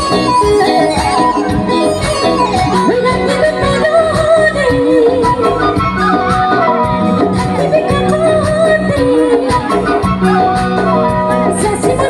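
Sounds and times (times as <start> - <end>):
live band playing: 0.0 - 12.0
woman singing: 2.0 - 12.0.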